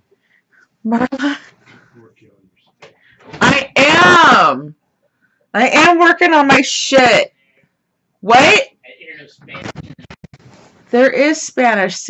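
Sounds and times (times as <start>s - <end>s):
faint voice: 8.8s - 10.2s.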